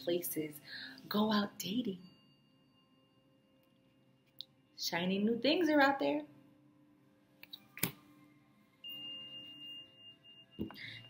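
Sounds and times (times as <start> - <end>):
high steady ringing tone: 0.0 - 7.4, 8.1 - 11.0.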